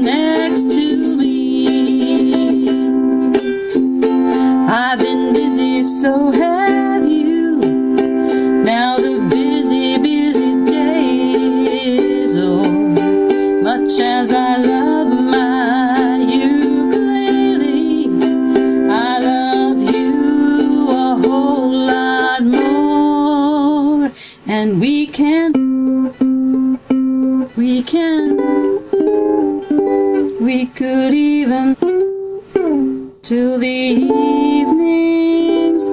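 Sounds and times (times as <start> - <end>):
woman singing: 0.0 - 26.6, 27.2 - 35.9
ukulele strumming chords: 0.0 - 35.9.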